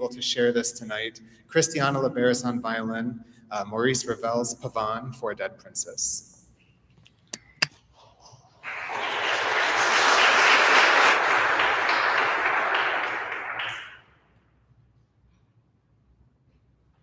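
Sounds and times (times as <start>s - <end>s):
audience applauding: 8.6s - 14.0s.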